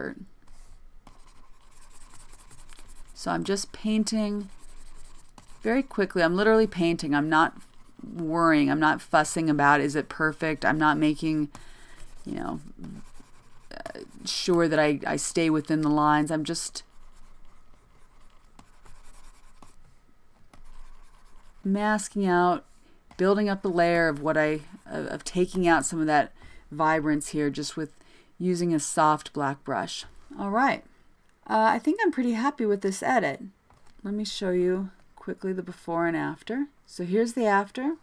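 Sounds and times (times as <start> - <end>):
stylus scratching on tablet: 0.4 - 27.5.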